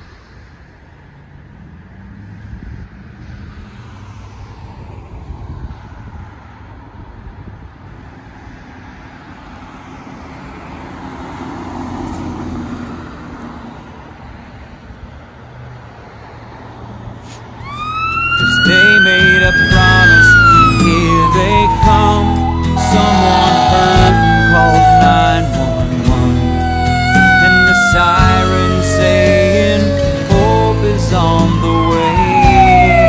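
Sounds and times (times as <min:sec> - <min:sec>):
passing vehicles: 0:00.0 - 0:33.0
emergency siren wailing: 0:17.6 - 0:33.0.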